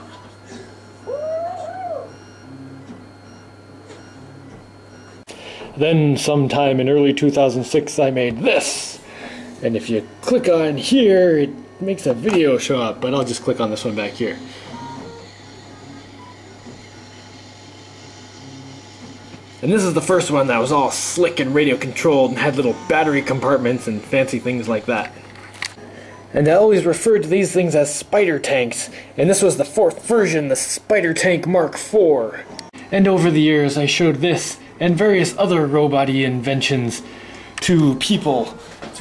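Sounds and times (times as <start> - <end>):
faint steady hum: 0.0 - 39.0
small gear motors whirring: 13.4 - 25.8.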